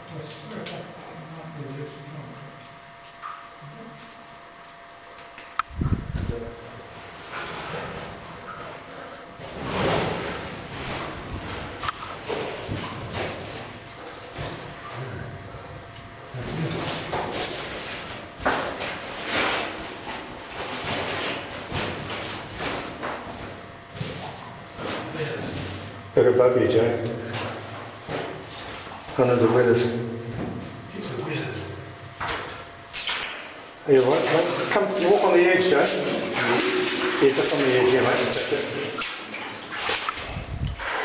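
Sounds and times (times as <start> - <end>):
footsteps sloshing through water: 32.2 - 41.0.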